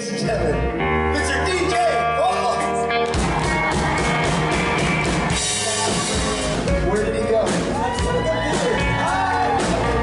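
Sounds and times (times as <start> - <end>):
electric guitar: 0.0 - 10.0
steady drum beat: 3.1 - 10.0.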